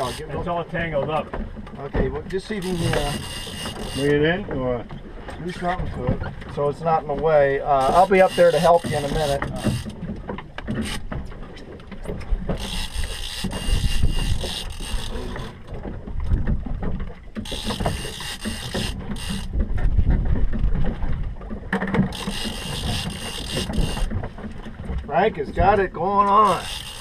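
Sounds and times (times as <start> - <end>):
fishing reel drag ratcheting: 0.0 - 0.4, 2.4 - 4.2, 7.7 - 10.0, 10.7 - 11.1, 12.5 - 15.7, 17.4 - 19.6, 22.0 - 24.2, 26.4 - 27.0.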